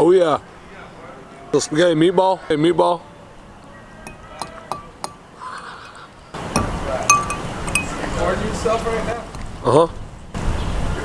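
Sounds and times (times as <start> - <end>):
fork clinking against glass container: 4.1 - 8.2.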